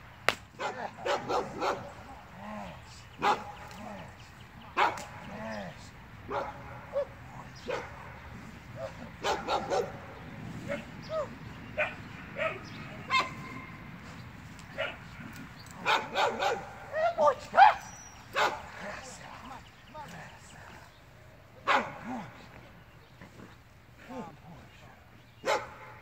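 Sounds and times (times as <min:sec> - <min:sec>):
dog barking and yipping: 0:00.6 - 0:02.0, 0:03.2 - 0:03.6, 0:04.8 - 0:05.1, 0:06.3 - 0:08.2, 0:08.8 - 0:10.1, 0:11.8 - 0:13.8, 0:14.7 - 0:15.1, 0:15.8 - 0:18.7, 0:21.7 - 0:22.0, 0:25.4 - 0:26.0.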